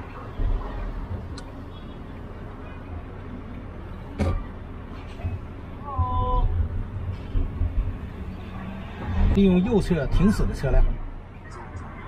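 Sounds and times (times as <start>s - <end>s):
car driving in traffic: 0.0s - 12.0s.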